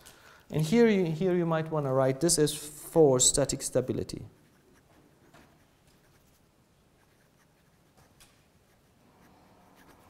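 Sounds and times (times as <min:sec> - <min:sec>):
pen scratching on plastic sheet: 0:04.4 - 0:10.0.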